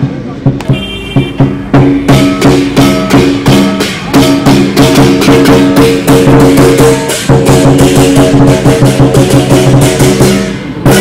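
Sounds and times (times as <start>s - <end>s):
drum beaten in fast rhythm: 0.0s - 11.0s
cymbals: 0.5s - 11.0s.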